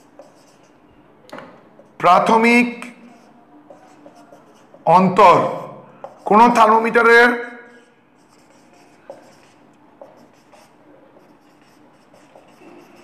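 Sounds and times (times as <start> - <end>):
marker pen writing on whiteboard: 0.0 - 13.0.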